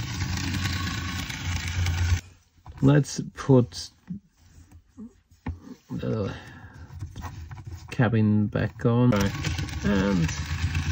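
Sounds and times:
model train motor whirring: 0:00.0 - 0:02.2, 0:09.2 - 0:10.9.

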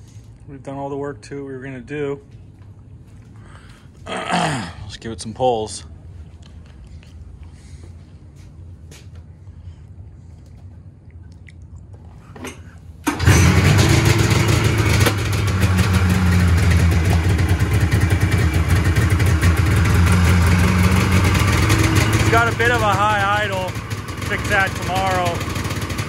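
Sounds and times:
snowmobile engine starting and running: 0:12.5 - 0:26.0.

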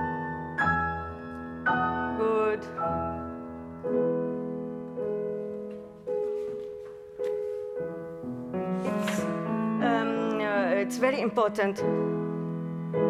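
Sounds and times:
grand piano slow chords: 0:00.0 - 0:13.0.

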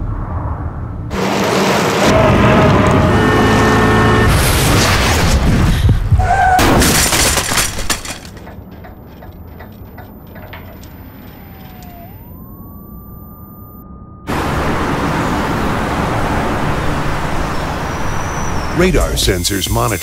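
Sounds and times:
city traffic noise: 0:00.0 - 0:04.7, 0:14.3 - 0:19.9
crash noise: 0:00.0 - 0:11.8
clicks and rattles: 0:06.9 - 0:11.9
thin ringing tone: 0:08.6 - 0:14.8.

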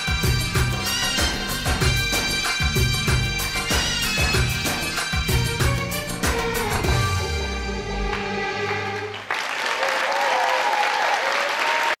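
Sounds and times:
pop dance music: 0:00.0 - 0:07.4
audience cheering: 0:08.0 - 0:12.0
audience applause: 0:08.1 - 0:12.0.

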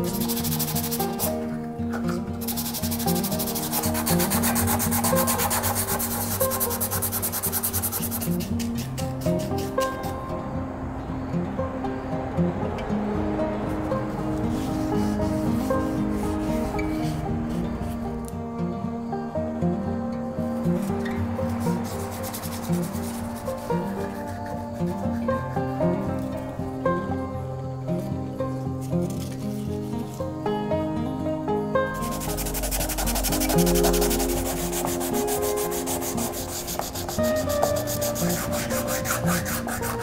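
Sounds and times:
sandpaper rubbing on wood: 0:00.0 - 0:10.2, 0:14.5 - 0:17.2, 0:21.5 - 0:25.2, 0:32.0 - 0:40.0
background music: 0:00.0 - 0:40.0.

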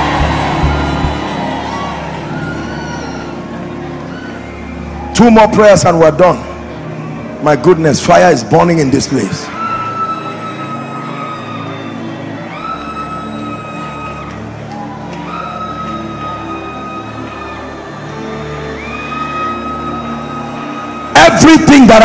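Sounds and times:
slow background music: 0:00.0 - 0:22.0.

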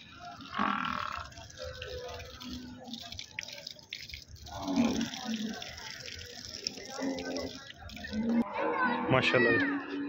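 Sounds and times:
busy background noise: 0:00.0 - 0:10.0.

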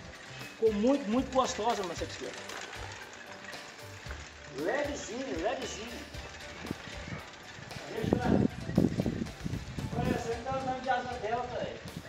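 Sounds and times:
bicycle knocks and rattles: 0:00.0 - 0:12.0.

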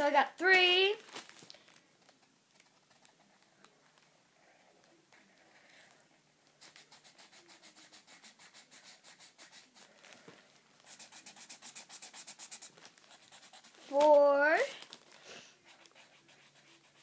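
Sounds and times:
marker scribbling on paper: 0:06.6 - 0:09.9, 0:10.8 - 0:14.0, 0:15.6 - 0:17.0.

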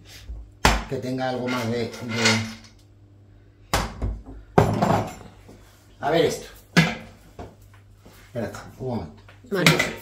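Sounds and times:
kitchenware clattering on counter: 0:04.6 - 0:05.4.

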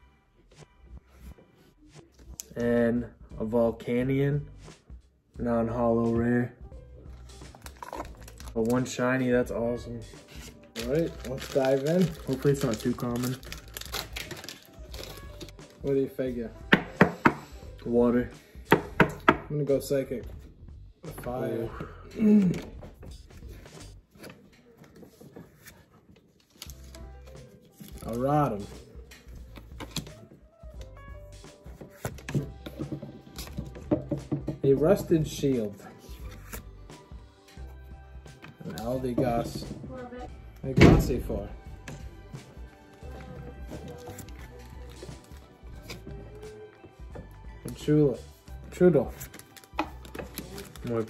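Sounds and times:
trading cards clicking and rustling: 0:10.2 - 0:15.9, 0:22.2 - 0:30.3, 0:43.0 - 0:46.2, 0:49.1 - 0:51.0
trading cards flipped: 0:23.5 - 0:28.2, 0:31.7 - 0:33.7, 0:35.6 - 0:36.7, 0:43.1 - 0:46.1, 0:49.1 - 0:51.0.

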